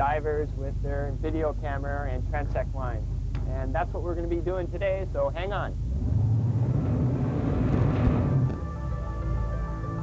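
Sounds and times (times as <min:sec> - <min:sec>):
boat engine droning: 0:05.0 - 0:10.0.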